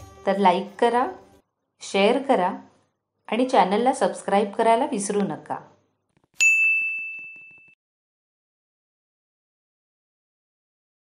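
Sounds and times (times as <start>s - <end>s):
bell-like ding: 6.4s - 7.8s.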